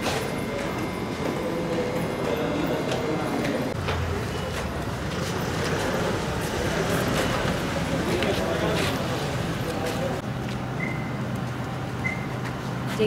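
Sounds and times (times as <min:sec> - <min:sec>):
voices murmuring: 0:00.0 - 0:12.6
footsteps of group walking: 0:00.0 - 0:13.0.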